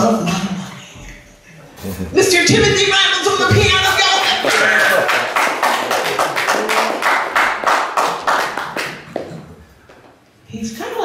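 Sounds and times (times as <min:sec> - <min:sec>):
hands clapping in rhythm: 0:04.1 - 0:09.4.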